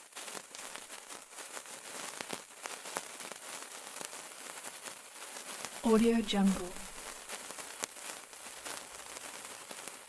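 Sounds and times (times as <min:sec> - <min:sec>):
sparkler hissing and crackling: 0:00.0 - 0:10.0.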